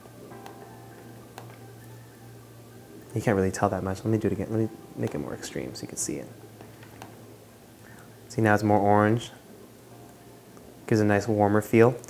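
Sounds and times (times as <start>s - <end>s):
faint background music: 0.0s - 12.0s
low steady hum: 0.0s - 12.0s.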